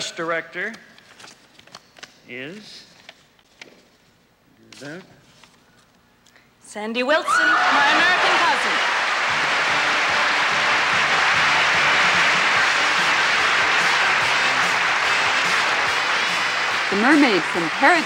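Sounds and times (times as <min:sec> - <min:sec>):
audience applauding: 0:07.5 - 0:18.0
band music: 0:09.2 - 0:18.0.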